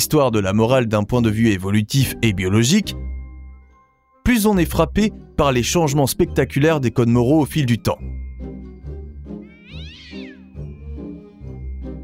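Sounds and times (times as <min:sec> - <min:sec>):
background music: 0:00.0 - 0:12.0
cat meow: 0:09.4 - 0:10.5.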